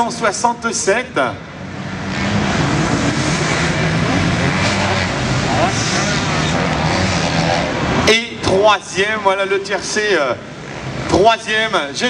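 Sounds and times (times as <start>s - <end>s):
motocross bike engines revving: 0.0s - 12.0s.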